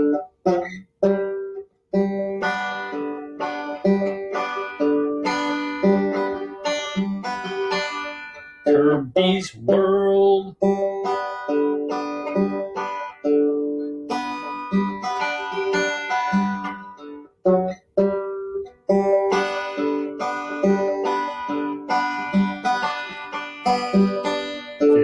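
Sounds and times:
banjo playing: 0.0s - 25.0s.

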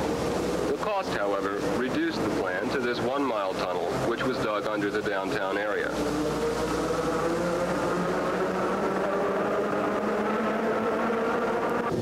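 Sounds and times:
electric railcar rumbling in tunnel: 0.0s - 12.0s.

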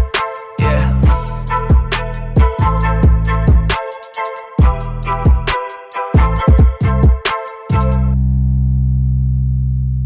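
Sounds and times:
low held bass note: 8.0s - 10.0s.

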